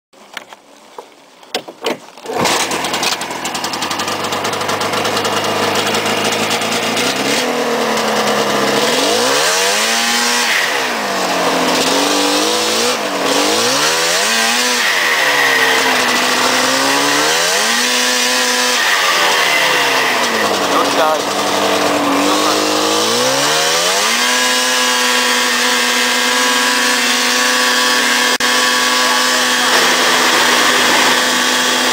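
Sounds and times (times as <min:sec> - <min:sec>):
snowmobile engine revving: 0:02.2 - 0:31.9.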